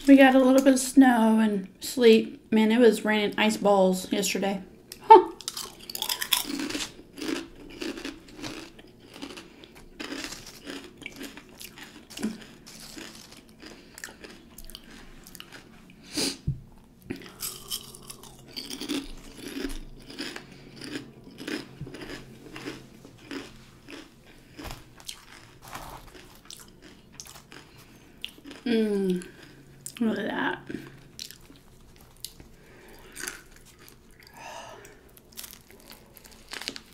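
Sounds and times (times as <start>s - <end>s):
crunching potato chips: 5.4s - 15.7s, 17.1s - 30.0s, 30.8s - 36.9s.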